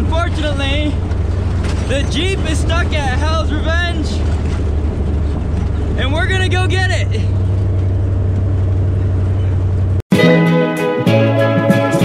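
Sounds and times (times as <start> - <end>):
vehicle engine drone in cab: 0.0 - 10.1.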